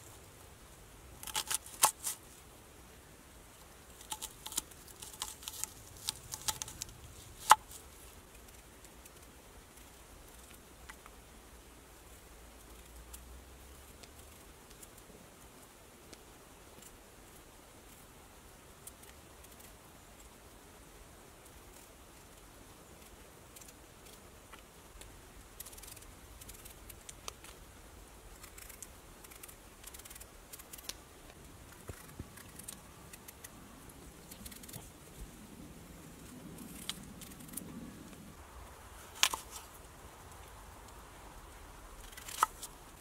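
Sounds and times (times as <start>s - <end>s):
knife scraping potato skin: 1.2s - 2.2s, 4.0s - 7.8s.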